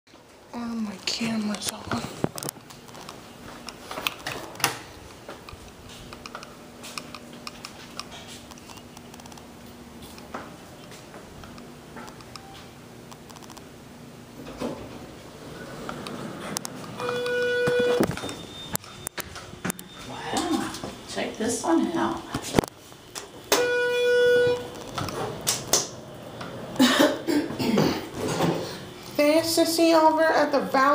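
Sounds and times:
faint steady hum: 0:00.2 - 0:30.9
elevator chime: 0:16.8 - 0:20.6, 0:23.5 - 0:25.2.

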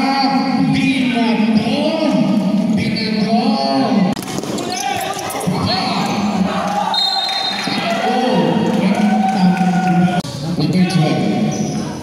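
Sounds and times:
players' voices in a hall: 0:00.0 - 0:12.0.

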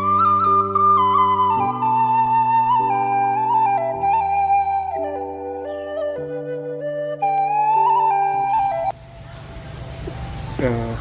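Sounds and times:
person speaking: 0:10.6 - 0:11.0.

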